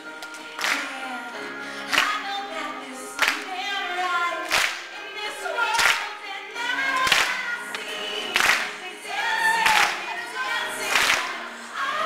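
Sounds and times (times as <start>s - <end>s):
audience clapping along: 0.0s - 1.2s, 1.8s - 2.2s, 3.2s - 3.6s, 4.3s - 5.1s, 5.7s - 12.0s
live band with singing: 0.0s - 12.0s.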